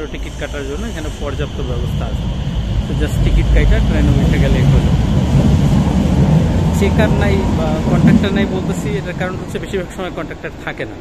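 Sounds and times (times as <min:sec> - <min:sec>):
train rumbling: 0:00.0 - 0:11.0
voices: 0:00.0 - 0:11.0.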